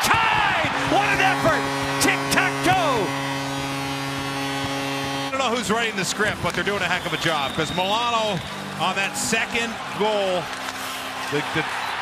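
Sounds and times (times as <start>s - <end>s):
excited voices shouting: 0.0s - 1.6s, 8.2s - 12.0s
goal horn blast: 0.0s - 12.0s.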